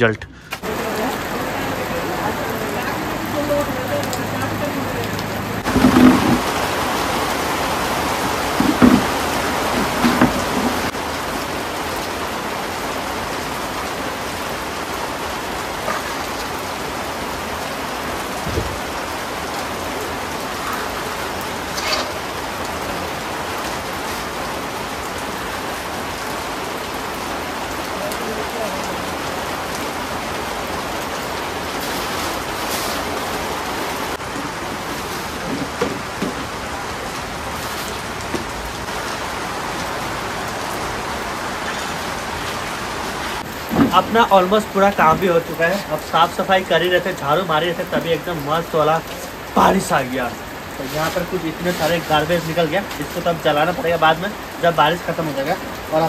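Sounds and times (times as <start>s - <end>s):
heavy rain: 0.0s - 56.0s.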